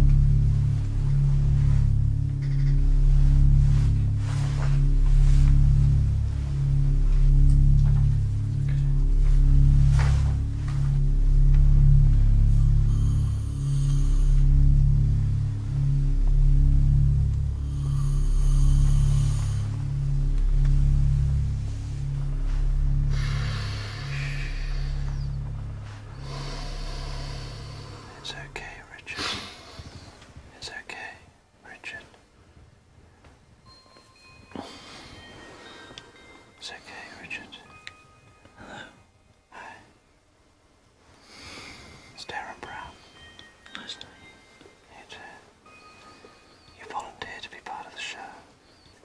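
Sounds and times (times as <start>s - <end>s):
pulsing low bass music: 0.0s - 31.2s, 42.2s - 44.3s, 46.8s - 48.4s
soft whispering and breaths: 0.0s - 40.3s, 40.9s - 49.0s.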